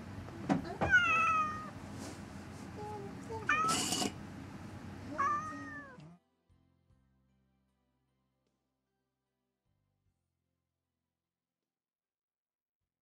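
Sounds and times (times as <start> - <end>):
cat meowing: 0.7 - 1.8, 3.4 - 4.1, 5.1 - 6.1.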